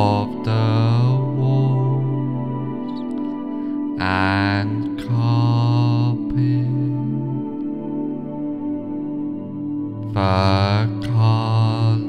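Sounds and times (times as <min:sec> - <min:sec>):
ambient meditation music: 0:00.0 - 0:12.0
low drone notes: 0:00.0 - 0:12.0.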